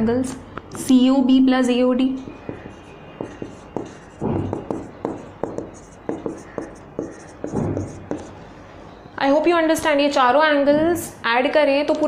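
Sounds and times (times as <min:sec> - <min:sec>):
marker pen writing on whiteboard: 0:02.3 - 0:08.4.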